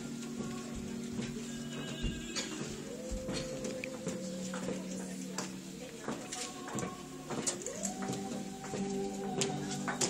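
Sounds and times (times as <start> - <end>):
background music with held notes: 0.0 - 10.0
high-heeled footsteps on hard floor: 0.0 - 10.0.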